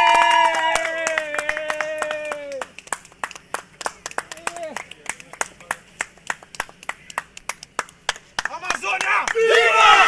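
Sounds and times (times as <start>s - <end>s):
people clapping: 0.0s - 10.0s.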